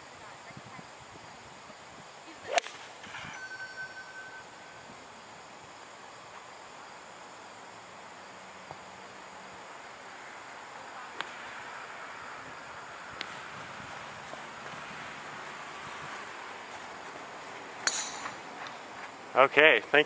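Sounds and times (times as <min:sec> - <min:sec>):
golf club striking ball: 0:17.8 - 0:18.4.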